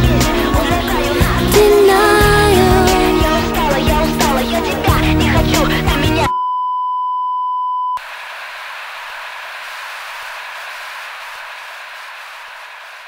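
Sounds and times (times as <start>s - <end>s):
static hiss: 8.0s - 13.0s.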